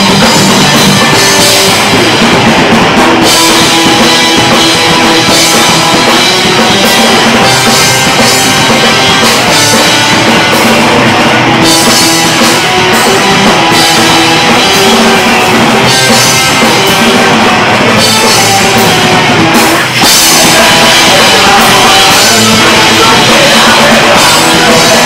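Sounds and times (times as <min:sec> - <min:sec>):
punk rock band playing: 0:00.0 - 0:25.0.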